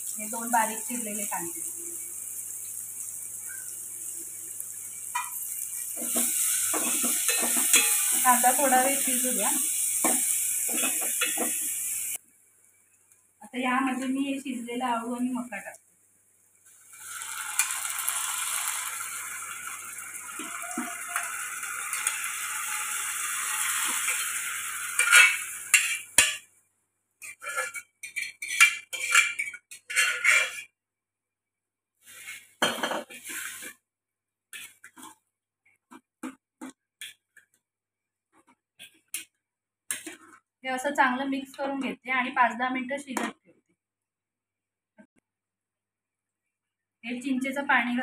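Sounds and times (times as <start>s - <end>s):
crackling sizzle in pot: 0.0s - 30.8s, 32.0s - 33.8s, 34.5s - 35.2s, 38.4s - 43.2s
steel spoon knocking pans: 6.0s - 8.4s, 10.0s - 11.7s, 24.9s - 26.4s.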